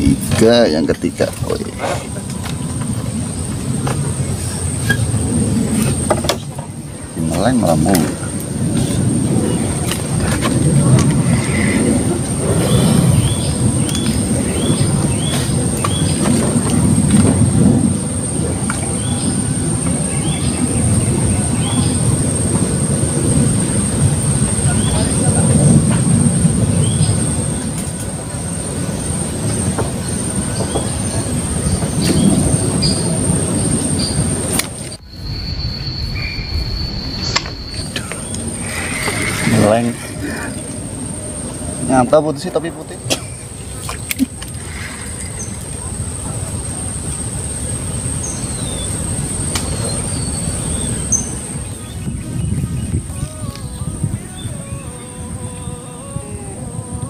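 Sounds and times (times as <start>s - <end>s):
low rumble: 0.0s - 57.0s
steady high whine: 0.0s - 57.0s
thin noise with high tone: 32.9s - 42.5s.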